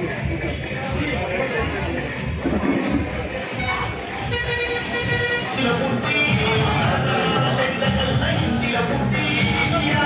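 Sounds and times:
crowd chatter: 0.0 - 10.0
vehicle horn honking: 3.5 - 5.6.

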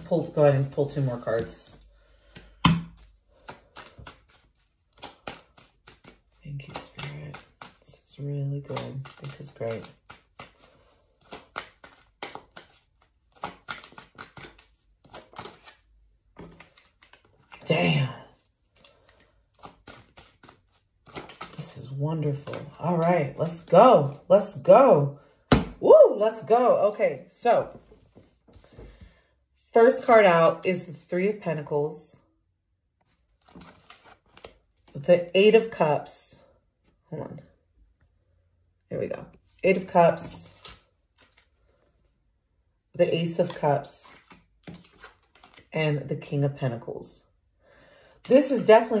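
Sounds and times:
cards shuffling and slapping: 0.1 - 26.5, 33.0 - 35.1, 39.3 - 41.8, 43.2 - 45.8.

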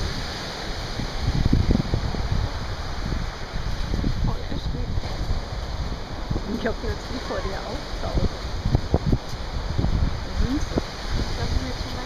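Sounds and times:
small surf breaking on sand: 0.0 - 12.0
wind buffeting microphone: 0.0 - 12.0.

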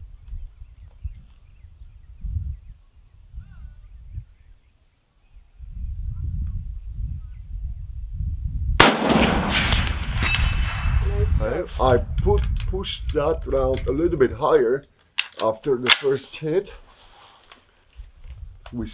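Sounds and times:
wind rumbling on microphone: 0.0 - 14.6, 17.9 - 18.9
loud echoing rifle shot: 8.8 - 11.1.

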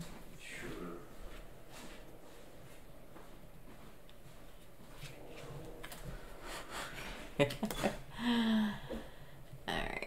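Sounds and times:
person laughing: 7.0 - 8.7.

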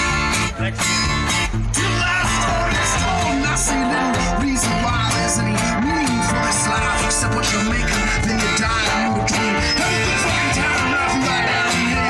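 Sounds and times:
accordion: 0.0 - 12.0
acoustic guitar: 0.0 - 12.0
drum kit beat: 0.0 - 12.0
person singing: 1.7 - 12.0.

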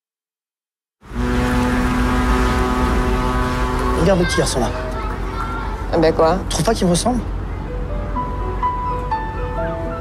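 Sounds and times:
ship horn low blast: 1.0 - 5.8.

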